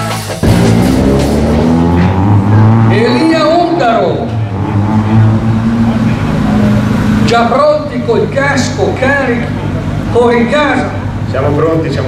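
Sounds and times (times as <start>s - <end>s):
car engine running at low revs: 0.4s - 12.0s.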